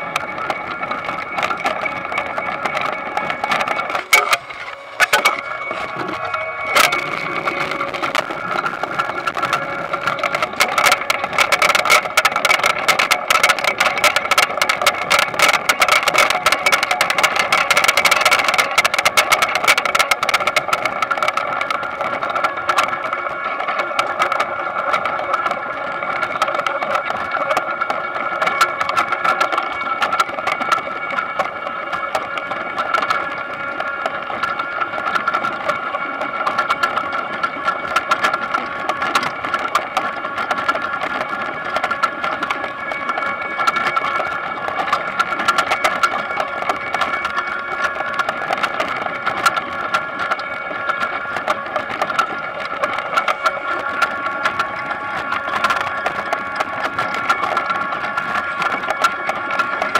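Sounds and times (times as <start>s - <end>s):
harvester machine drone: 0.0s - 59.9s.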